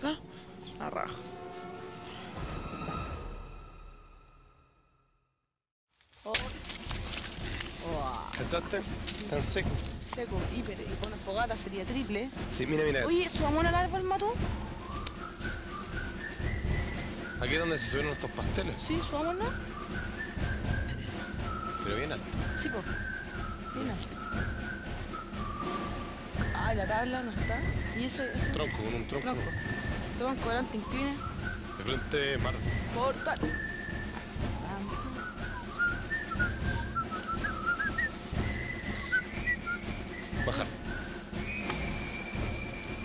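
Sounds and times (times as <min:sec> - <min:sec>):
high whistling tone: 0:12.7 - 0:43.0.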